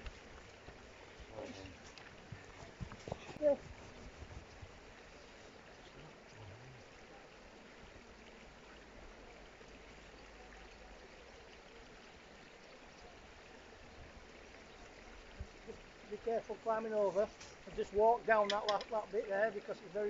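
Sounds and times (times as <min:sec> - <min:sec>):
faint steady rushing hiss: 0:00.0 - 0:20.0.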